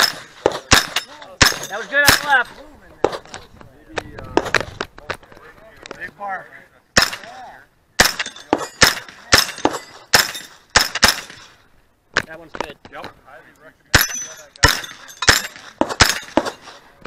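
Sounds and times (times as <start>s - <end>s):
carbine firing rapid shots: 0.0s - 2.4s.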